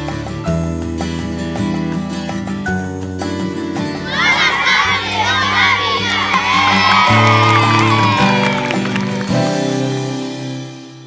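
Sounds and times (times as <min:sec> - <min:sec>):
background music: 0:00.0 - 0:11.0
children shouting and cheering: 0:03.9 - 0:09.6
long high shout: 0:04.0 - 0:09.3.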